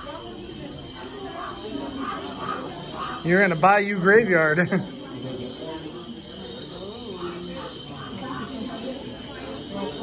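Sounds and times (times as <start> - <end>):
crickets chirping: 0.0 - 10.0
low crowd chatter: 0.0 - 10.0.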